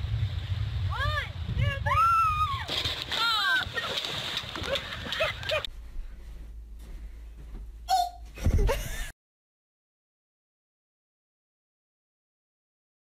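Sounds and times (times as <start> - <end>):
low steady hum: 0.0 - 9.1
people whooping and yelling: 1.9 - 2.7
water splash: 2.4 - 5.7.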